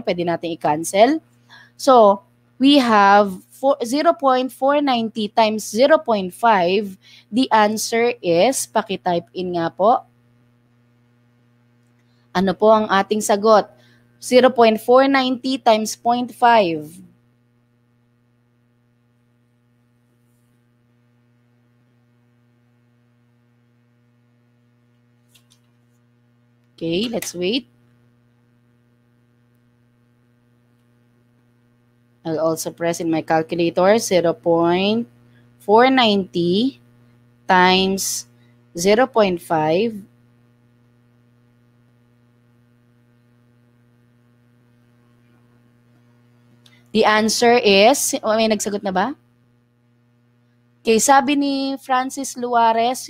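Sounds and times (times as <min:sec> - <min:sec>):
faint electrical hum: 0:00.0 - 0:53.0.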